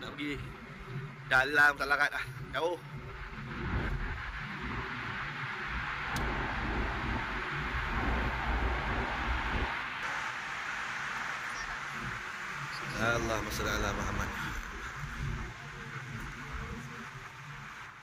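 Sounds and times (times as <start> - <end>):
low road rumble: 0.0 - 18.0
tyre hiss and engine: 3.3 - 18.0.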